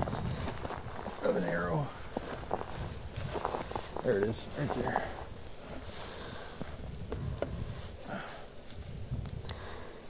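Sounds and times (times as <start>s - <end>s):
dry grass rustling: 0.0s - 9.9s
wind rumble on microphone: 0.0s - 9.9s.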